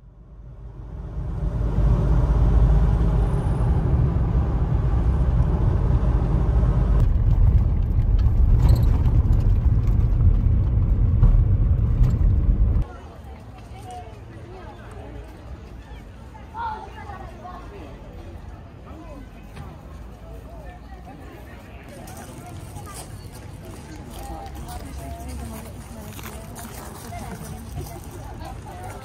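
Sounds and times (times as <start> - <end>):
car engine and tyres rumbling: 0.0 - 12.9
quiet outdoor background: 0.0 - 23.3.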